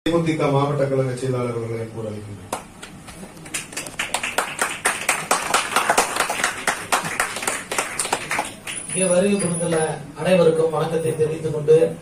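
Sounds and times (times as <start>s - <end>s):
audience clapping: 2.5s - 9.0s.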